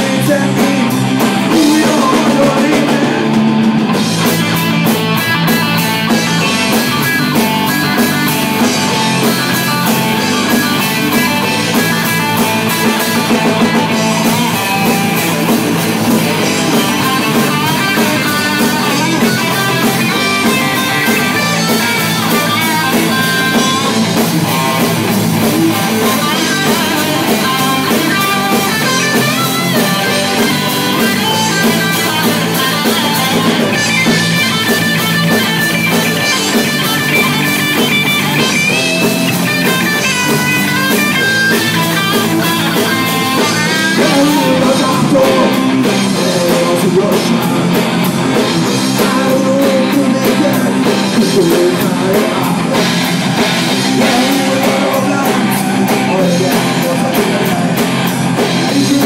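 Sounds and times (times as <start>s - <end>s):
live rock band playing: 0.0s - 59.0s.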